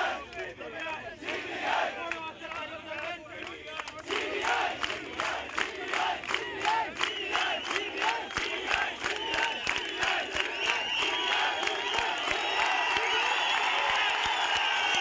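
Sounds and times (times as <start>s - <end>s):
crowd chanting in unison: 0.0s - 2.2s, 2.9s - 12.8s
rhythmic clapping: 0.0s - 15.0s.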